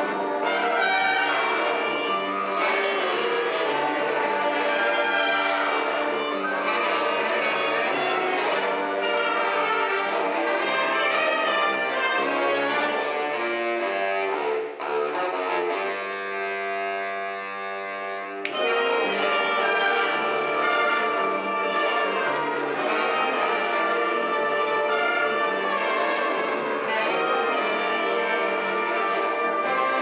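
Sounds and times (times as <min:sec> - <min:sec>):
wind band playing: 0:00.0 - 0:30.0.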